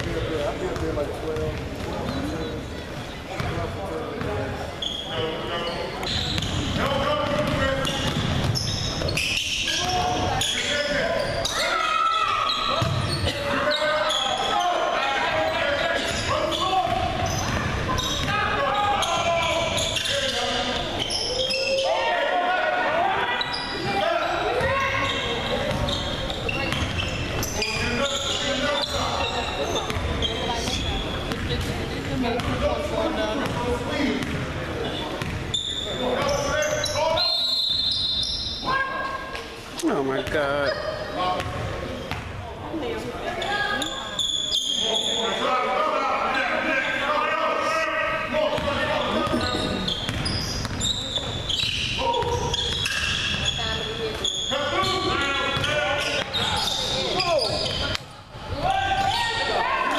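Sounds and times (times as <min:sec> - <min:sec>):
people shouting and calling: 0:11.4 - 0:17.2, 0:17.9 - 0:25.4, 0:58.6 - 0:59.9.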